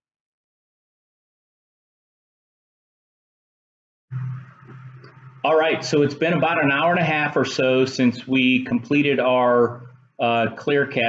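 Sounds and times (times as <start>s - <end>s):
low hum with faint hiss: 4.1s - 11.0s.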